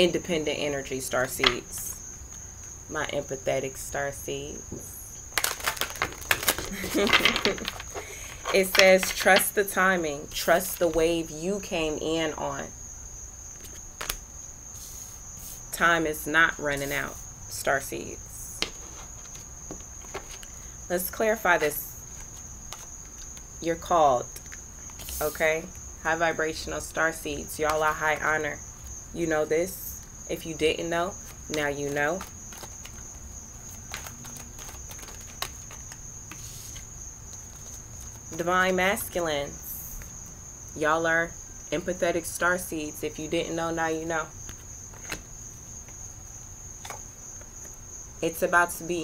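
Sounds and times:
cards shuffling by hand: 5.3 - 9.6, 13.6 - 14.2, 18.6 - 20.6, 21.6 - 23.5, 24.4 - 25.4, 31.2 - 38.4, 44.5 - 45.3.

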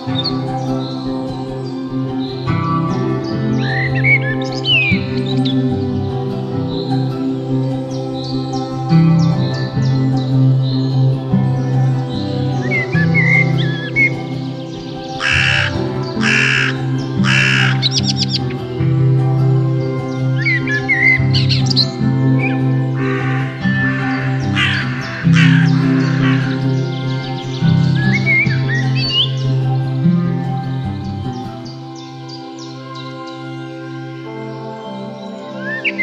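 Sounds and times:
soft ambient music: 0.0 - 36.0
songbird chirping: 0.0 - 36.0
harsh rasping bird calls: 12.2 - 18.7, 20.3 - 29.9.

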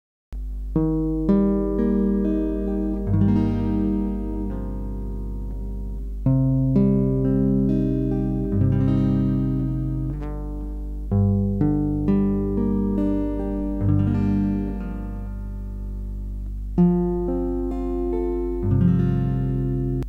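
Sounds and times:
fingerpicked acoustic guitar: 0.4 - 20.0.

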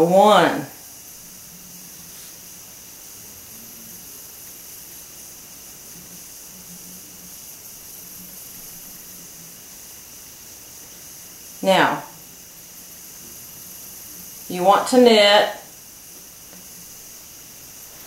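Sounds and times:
faint low hum: 0.0 - 18.0
room tone hiss: 0.0 - 18.0.

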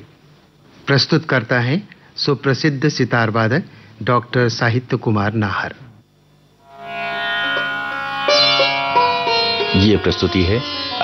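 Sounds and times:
sitar playing melody over drone: 6.6 - 11.0.

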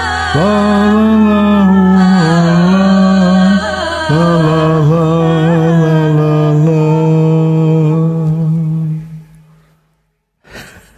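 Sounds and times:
man singing long low note: 0.0 - 9.6.

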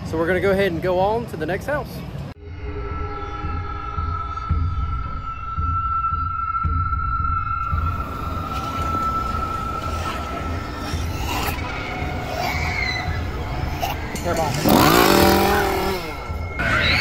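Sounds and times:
low throbbing background music: 2.2 - 17.0
loud wavering cry: 7.6 - 17.0.

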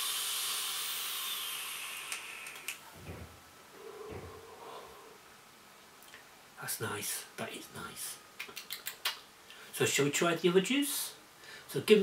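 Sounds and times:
e-cigarette hissing: 0.0 - 2.7
breathy exhaling: 3.7 - 5.3.

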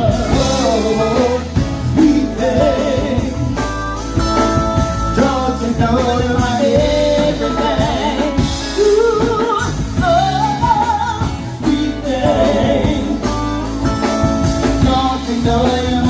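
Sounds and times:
woman singing lead with vibrato: 0.0 - 3.7, 5.2 - 13.7
drum kit: 0.0 - 16.0
electric bass: 0.0 - 16.0
electric guitar: 0.0 - 16.0.

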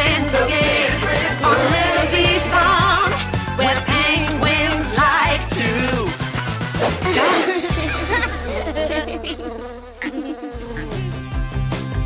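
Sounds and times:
upbeat music with a beat: 0.0 - 8.4
cartoon bee buzzing: 6.8 - 11.6.

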